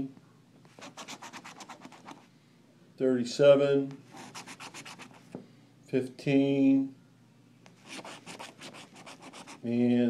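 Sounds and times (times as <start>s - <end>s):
lottery ticket scratching: 7.8s - 9.7s.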